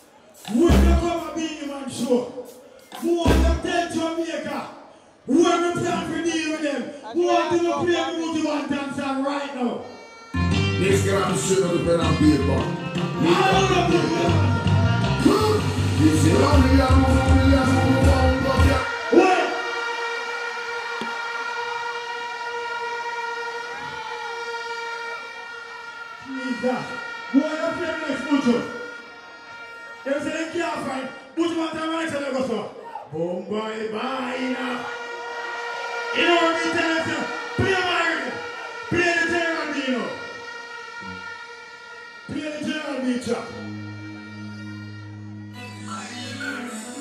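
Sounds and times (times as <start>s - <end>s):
music over sound system: 0.0s - 4.6s, 10.4s - 31.4s, 34.7s - 47.0s
faint crowd noise: 0.0s - 47.0s
low bass note: 0.6s - 1.2s, 3.2s - 3.7s
held electronic chord: 10.4s - 29.8s, 35.0s - 47.0s
siren-like electronic tone: 34.7s - 47.0s.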